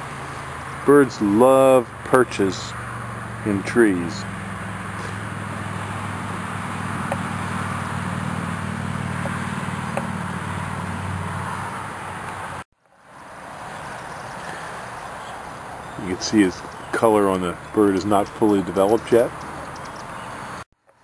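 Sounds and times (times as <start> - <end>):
outdoor background noise with hum: 0.0 - 21.0.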